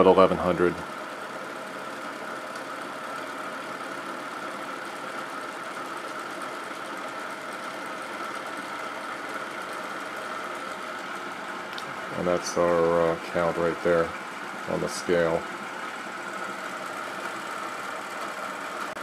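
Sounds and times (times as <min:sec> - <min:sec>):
rotor whirring with high whine: 0:00.0 - 0:19.0.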